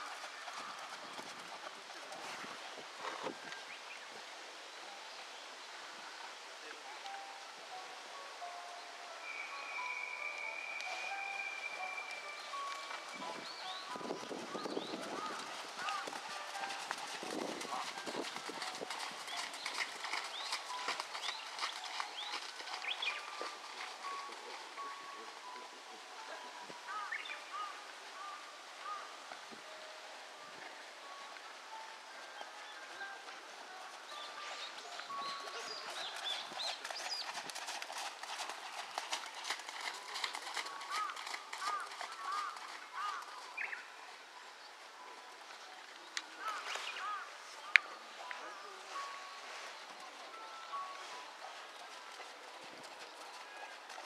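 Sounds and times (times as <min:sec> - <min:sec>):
horse hoofbeats on sand: 0:00.0 - 0:03.4, 0:12.2 - 0:24.9, 0:33.7 - 0:43.8.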